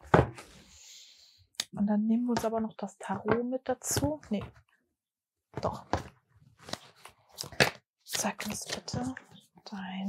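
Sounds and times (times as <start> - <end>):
cards rustling and slapping: 6.0 - 9.2.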